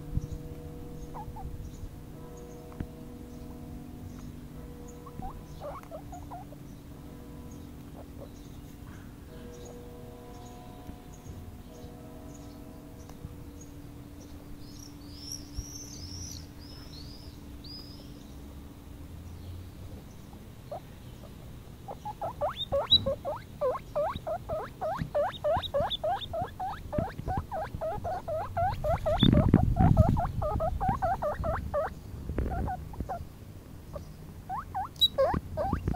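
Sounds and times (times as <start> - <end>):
guinea pig squeaking: 1.1 - 1.6, 5.0 - 6.6, 20.7 - 33.2, 34.5 - 35.9.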